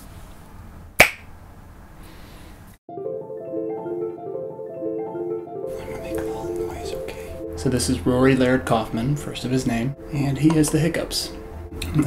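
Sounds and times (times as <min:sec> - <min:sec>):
finger snap: 0:01.0 - 0:01.3.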